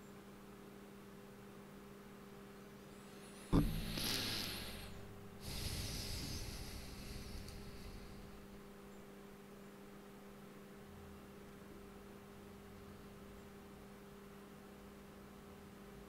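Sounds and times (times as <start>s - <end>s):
low electrical hum: 0.0s - 16.0s
breath close to microphone: 3.2s - 8.7s.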